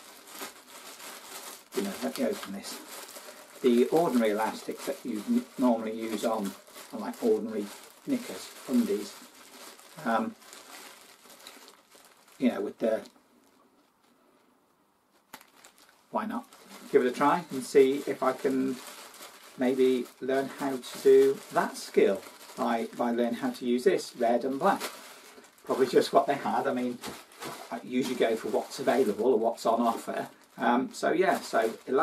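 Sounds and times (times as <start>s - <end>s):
plastic packaging crinkling: 0.0s - 14.2s, 15.1s - 32.0s.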